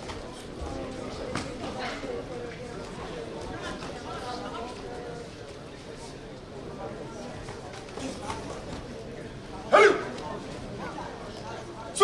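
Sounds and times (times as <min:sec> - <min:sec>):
sports hall noise: 0:00.0 - 0:12.0
person shouting sharply: 0:09.7 - 0:10.1.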